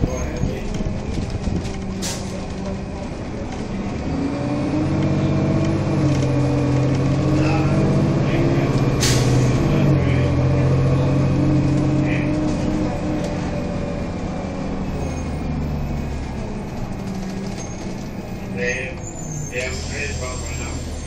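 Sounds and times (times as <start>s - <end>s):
bus engine droning: 0.0s - 21.0s.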